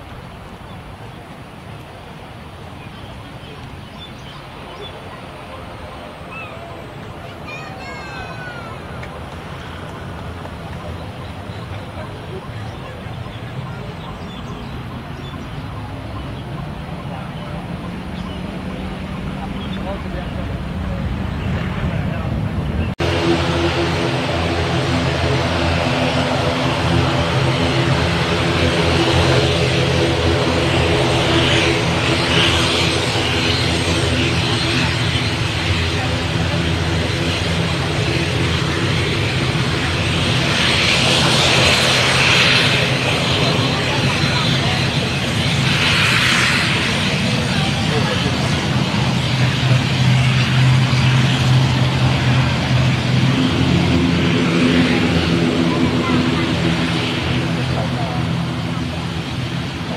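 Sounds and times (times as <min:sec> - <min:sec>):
jet engine roar: 0:00.0 - 0:59.9
turboprop engines and propellers: 0:00.0 - 0:59.9.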